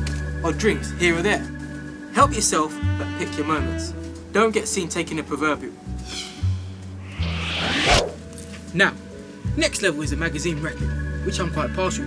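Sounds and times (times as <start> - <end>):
background music: 0.0 - 12.0
rising zip-like swish: 7.0 - 8.3.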